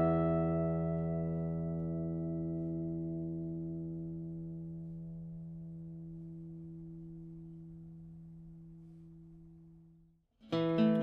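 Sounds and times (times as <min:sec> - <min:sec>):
acoustic guitar chord ringing: 0:00.0 - 0:09.6, 0:10.4 - 0:11.0.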